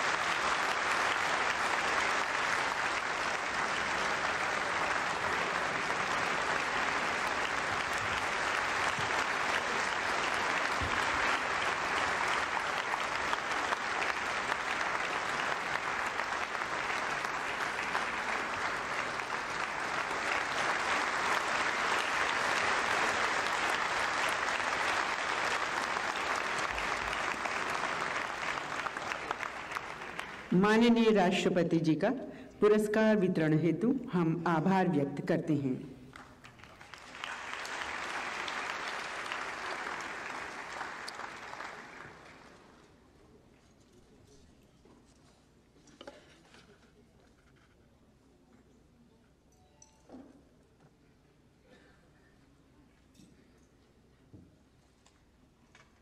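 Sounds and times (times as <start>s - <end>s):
large audience applauding: 0.0s - 30.9s, 36.1s - 42.9s.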